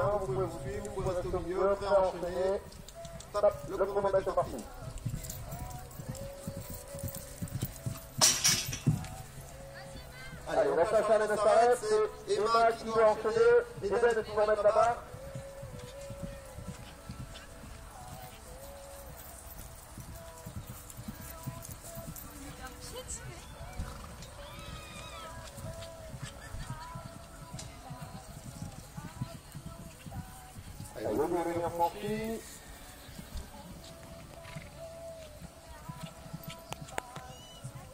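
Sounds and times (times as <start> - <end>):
hooves cantering on grass: 0.0 - 37.9.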